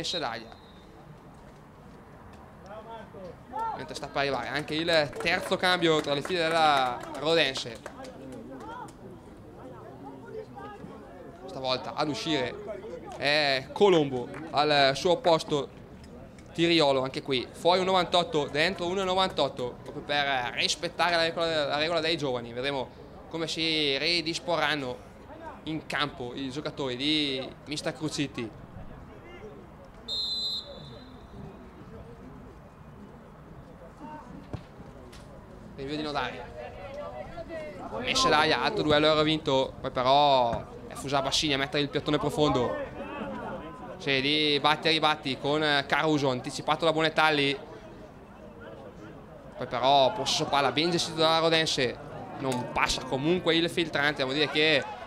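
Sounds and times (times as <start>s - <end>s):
distant voices of players: 0.0s - 55.0s
outdoor ambience: 0.0s - 55.0s
referee's whistle blast: 0.1s - 1.0s, 30.1s - 31.4s.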